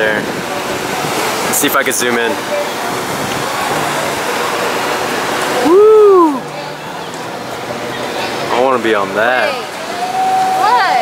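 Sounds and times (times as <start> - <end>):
sea: 0.0 - 11.0
wind: 0.0 - 11.0.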